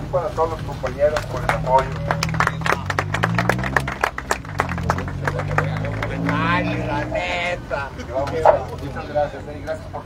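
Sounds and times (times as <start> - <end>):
people applauding: 1.1 - 7.0.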